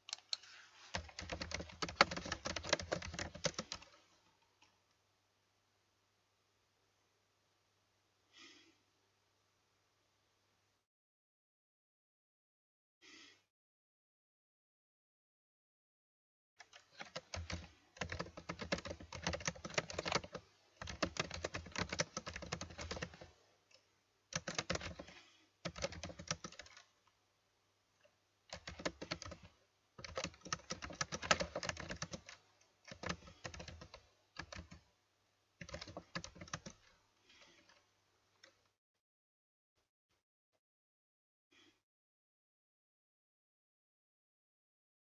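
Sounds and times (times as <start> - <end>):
fast typing on keyboard: 0.9 - 4.0, 16.6 - 23.3, 24.3 - 26.9, 28.5 - 34.8, 35.6 - 36.9.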